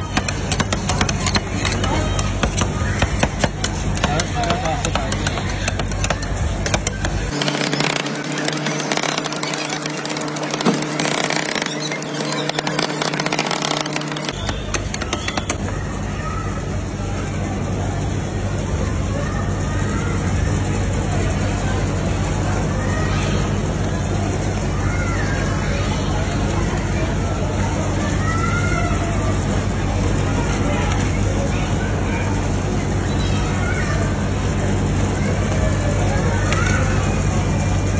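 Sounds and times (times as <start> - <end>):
indistinct voices chattering: 0.0 - 37.9
low mechanical hum: 0.0 - 37.9
metal spatulas tapping and scraping: 0.1 - 7.6.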